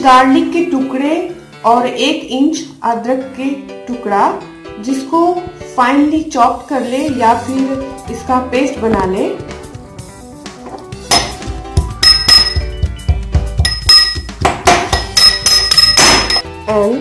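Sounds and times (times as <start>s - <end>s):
metal spoon pounding in steel cup: 11.1s - 11.4s, 12.0s - 12.8s, 13.6s - 16.5s.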